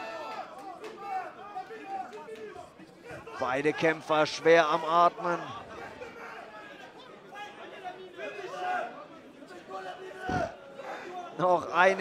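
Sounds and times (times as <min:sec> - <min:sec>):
spectators calling out and chattering: 0:00.0 - 0:12.0.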